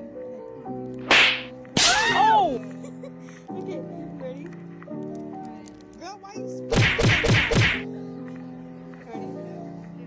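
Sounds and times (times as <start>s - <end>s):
soft background music: 0.0s - 10.0s
voices shouting together: 1.8s - 2.6s.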